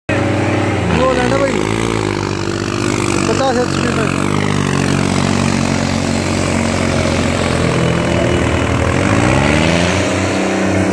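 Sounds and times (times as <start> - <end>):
tractor diesel engine under load: 0.1 - 10.9.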